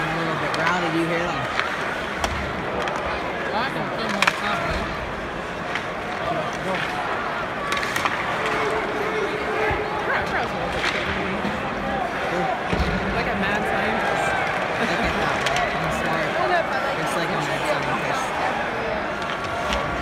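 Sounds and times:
crowd voices talking and calling: 0:00.0 - 0:20.0.

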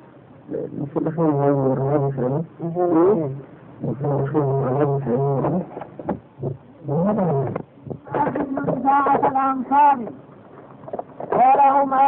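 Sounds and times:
man chanting in a droning voice: 0:00.5 - 0:05.8.

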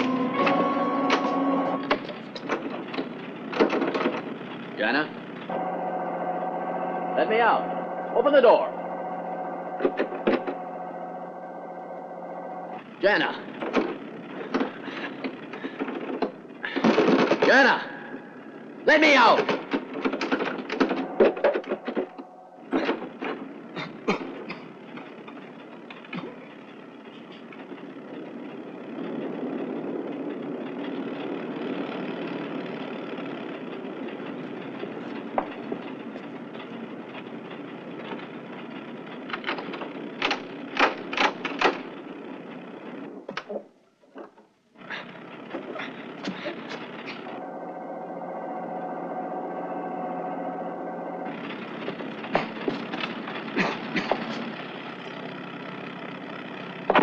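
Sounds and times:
steady drone: 0:00.0 - 0:43.3, 0:44.7 - 0:57.0
car engine running: 0:00.0 - 0:57.0
person coughing: 0:53.6 - 0:54.2.

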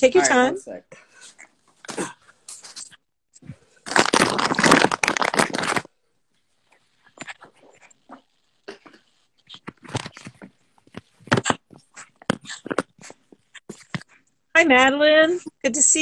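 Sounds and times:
fingers rubbing on phone: 0:06.5 - 0:14.2.

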